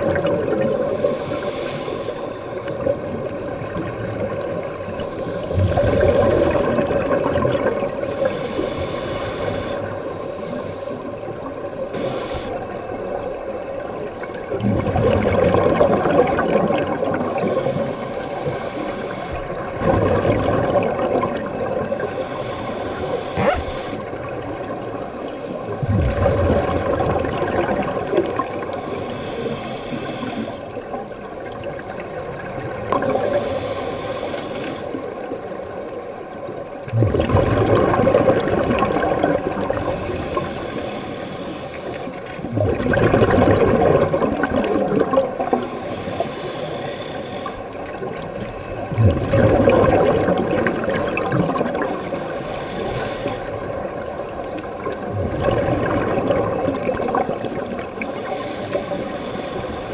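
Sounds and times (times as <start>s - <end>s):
scuba exhaust bubbles: 0.0s - 59.9s
steady underwater noise: 0.0s - 59.9s.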